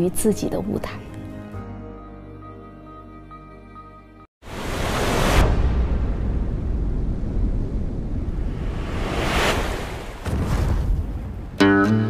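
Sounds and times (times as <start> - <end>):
whoosh: 4.4 - 11.0
deep rumbling wind-like noise: 4.5 - 11.6.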